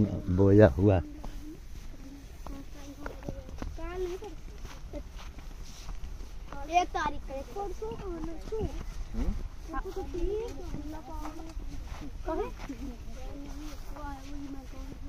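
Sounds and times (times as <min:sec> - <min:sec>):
footsteps on dirt path: 0:00.0 - 0:15.0
indistinct voices talking: 0:00.0 - 0:15.0.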